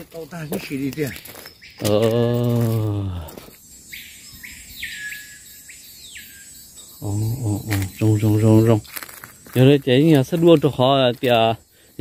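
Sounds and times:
faint insect hum: 0.0s - 12.0s.

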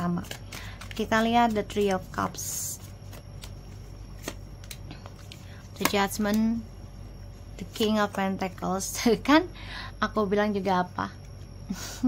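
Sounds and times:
woman speaking: 0.0s - 2.8s, 5.8s - 6.7s, 7.6s - 11.2s
cards flicking and tapping: 0.0s - 6.6s.

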